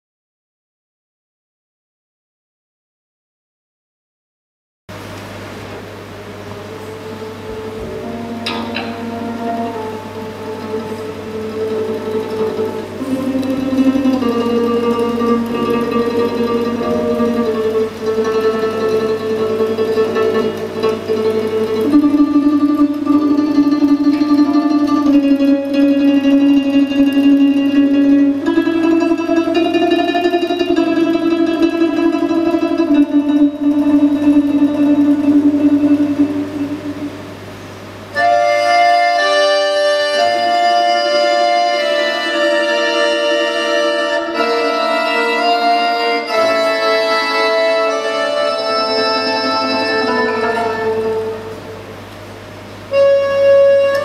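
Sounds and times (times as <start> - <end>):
accordion chords: 6.4 - 54.0
plucked strings: 6.5 - 54.0.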